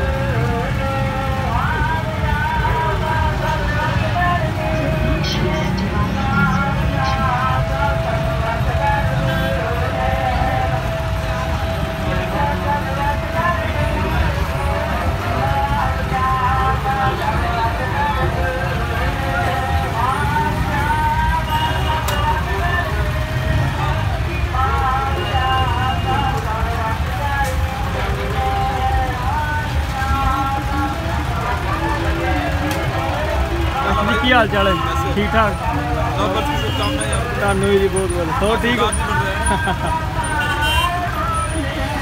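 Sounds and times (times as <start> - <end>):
crowd voices: 0.0 - 42.0
tractor engines rumbling: 0.0 - 42.0.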